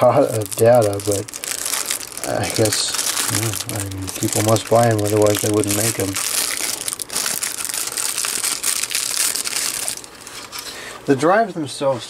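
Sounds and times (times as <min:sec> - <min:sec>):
plastic wrapping crinkling: 0:00.0 - 0:10.8.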